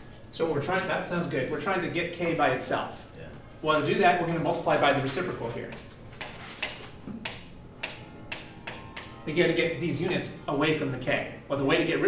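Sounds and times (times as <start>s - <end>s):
chalk writing on chalkboard: 5.7s - 8.4s.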